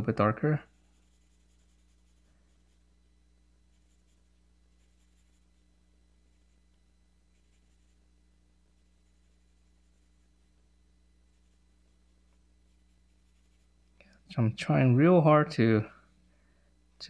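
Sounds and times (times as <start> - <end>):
low electrical hum: 0.0 - 17.0
pencil scratching on paper: 0.6 - 2.8, 3.7 - 5.6, 6.3 - 6.6, 7.3 - 8.0, 9.0 - 10.2, 11.3 - 11.6, 12.2 - 13.7.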